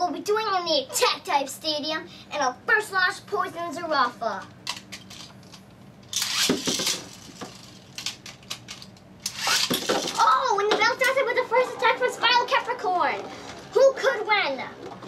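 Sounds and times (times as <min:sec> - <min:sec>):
child's voice: 0:00.0 - 0:04.5, 0:10.1 - 0:14.8
ripcord launcher ripping: 0:06.1 - 0:07.3, 0:09.2 - 0:10.2.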